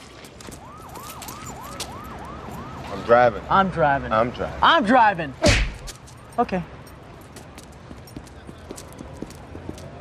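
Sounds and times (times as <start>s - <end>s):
police siren yelping: 0.5s - 3.2s.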